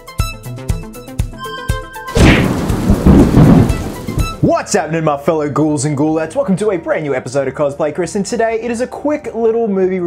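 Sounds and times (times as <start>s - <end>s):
thunder crack and rumble: 2.2s - 4.5s.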